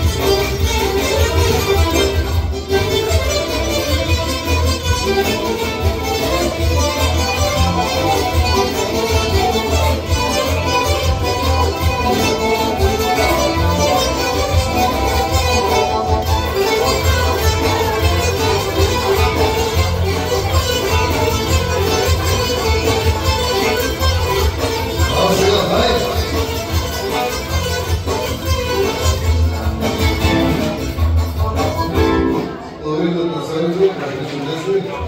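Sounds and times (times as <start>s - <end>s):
steady bass: 0.0s - 32.7s
nylon-string guitar improvising: 0.0s - 32.8s.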